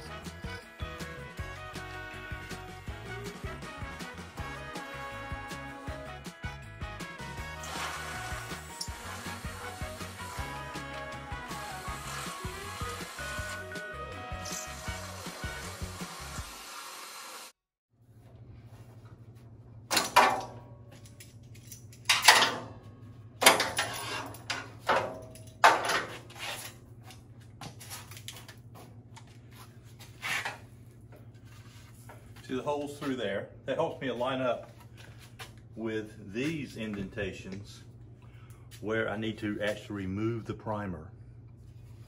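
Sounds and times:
background music: 0:00.0 - 0:16.6
sheet metal clanking and rattling: 0:22.1 - 0:22.8.

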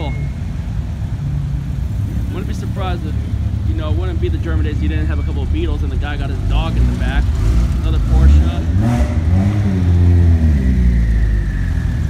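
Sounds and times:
car engines rumbling: 0:00.0 - 0:12.0.

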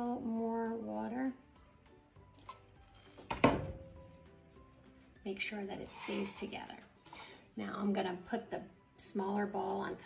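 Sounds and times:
glass jug knocking on table: 0:03.3 - 0:03.9.

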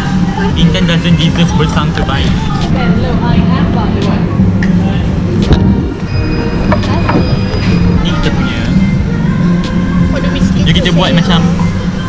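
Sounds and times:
people talking: 0:00.0 - 0:05.7, 0:06.7 - 0:08.8, 0:10.1 - 0:11.7.

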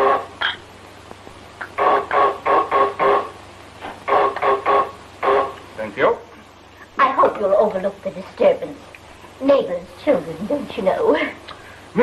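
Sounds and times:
electric buzzer buzzing: 0:01.7 - 0:03.4, 0:04.0 - 0:05.6.

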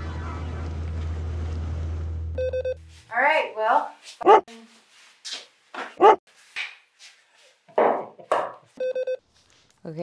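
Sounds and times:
short electronic beeps: 0:02.4 - 0:02.8, 0:08.8 - 0:09.2
dog barking: 0:04.2 - 0:04.5, 0:06.0 - 0:06.2.

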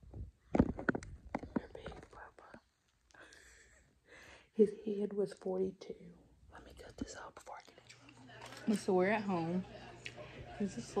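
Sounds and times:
faint whispered speech: 0:01.4 - 0:02.8, 0:05.9 - 0:11.0.

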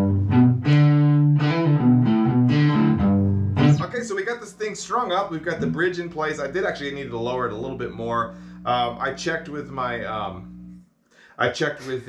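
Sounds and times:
electric cigar box guitar riff: 0:00.0 - 0:10.8.

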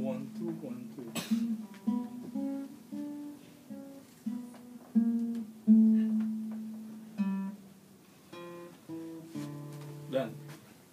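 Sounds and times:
classical guitar single notes: 0:00.0 - 0:10.6.

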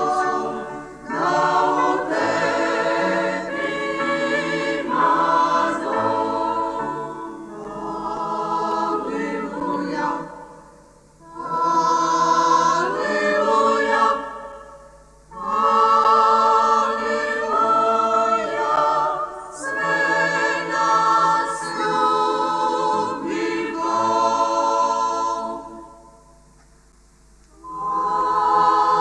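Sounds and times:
choir singing a hymn a cappella: 0:00.0 - 0:26.4, 0:27.5 - 0:29.0.

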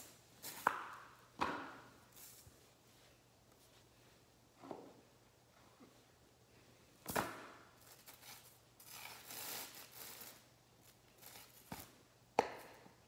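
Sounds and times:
rustling and scraping: 0:02.1 - 0:06.1.

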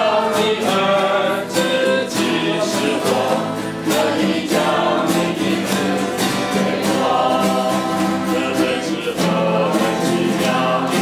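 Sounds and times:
group singing a worship song: 0:00.0 - 0:11.0.

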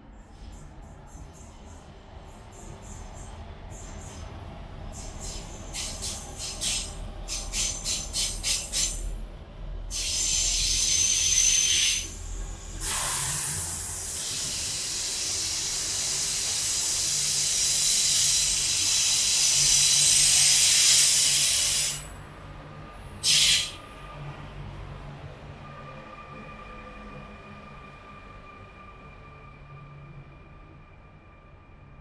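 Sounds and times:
loud high-pitched hiss: 0:09.9 - 0:22.1, 0:23.2 - 0:23.8.

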